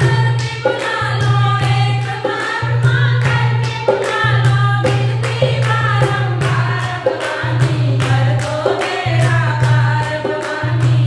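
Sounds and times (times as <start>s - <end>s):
dholak drum beat: 0.0s - 11.0s
rhythmic hand clapping: 0.0s - 11.0s
women singing devotional song: 0.0s - 11.0s.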